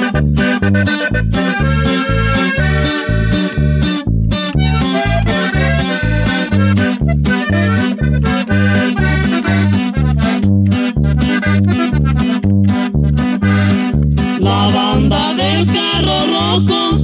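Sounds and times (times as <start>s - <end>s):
accordion melody: 0.0s - 17.0s
plucked string bass line: 0.0s - 17.0s.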